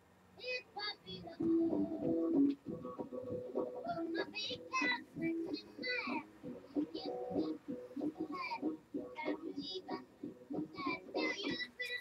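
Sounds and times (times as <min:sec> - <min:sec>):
high-pitched singing: 0:00.4 - 0:12.0
music with held notes: 0:01.3 - 0:12.0.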